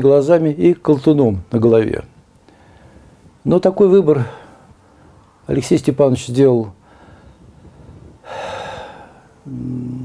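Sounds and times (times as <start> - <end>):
man's intake of breath: 6.8 - 9.5.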